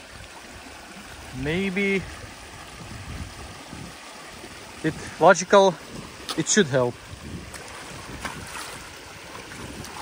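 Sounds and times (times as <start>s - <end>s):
water rushing through dam breach: 0.0s - 10.0s.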